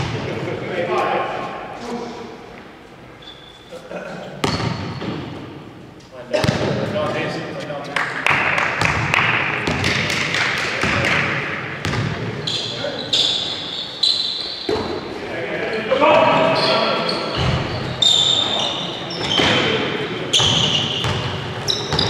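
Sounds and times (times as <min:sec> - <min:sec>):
shoes squeaking on court: 0:03.0 - 0:05.4, 0:11.8 - 0:15.1, 0:16.4 - 0:22.0
basketball bouncing on floor: 0:08.8 - 0:11.2, 0:11.8 - 0:12.2.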